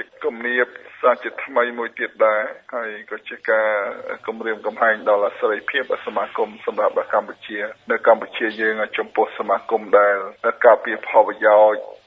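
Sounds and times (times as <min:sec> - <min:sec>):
person talking on radio: 0:00.0 - 0:12.0.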